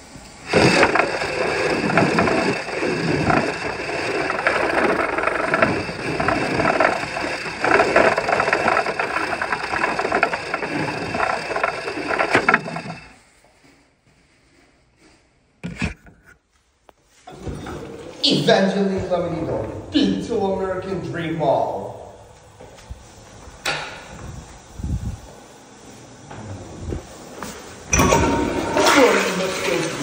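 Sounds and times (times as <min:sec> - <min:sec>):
toilet flushing: 0:00.0 - 0:13.2, 0:27.2 - 0:30.0.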